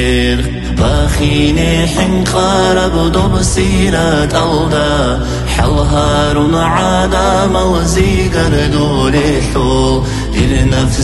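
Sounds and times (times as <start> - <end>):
person singing a religious chant: 0.0 - 11.0
steady low drone: 0.5 - 10.4.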